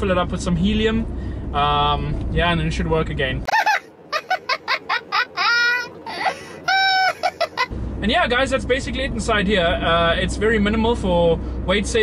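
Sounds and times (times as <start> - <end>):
man laughing high-pitched: 3.5 - 7.7.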